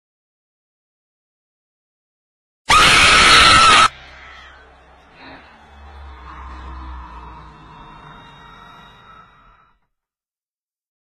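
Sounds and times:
loud shrill scream: 0:02.7 - 0:09.8.

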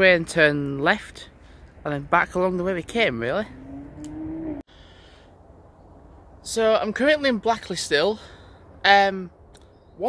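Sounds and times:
faint outdoor background noise: 0:00.0 - 0:10.0.

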